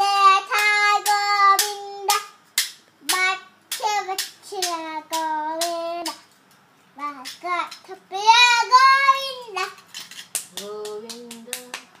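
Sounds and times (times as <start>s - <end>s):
child singing a wavering note: 0.0s - 2.3s, 7.0s - 9.8s
child clapping hands: 0.5s - 6.2s, 10.0s - 12.0s.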